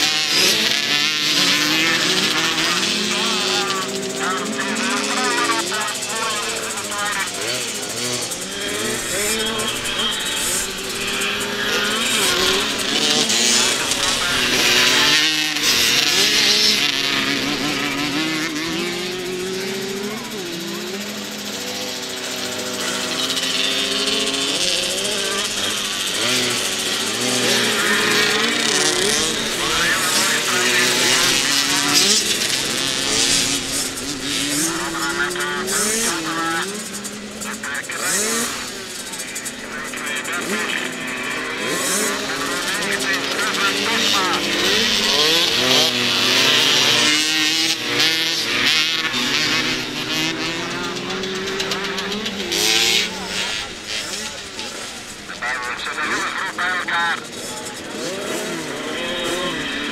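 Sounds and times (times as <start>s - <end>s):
motocross bike engines revving: 0.0s - 59.9s.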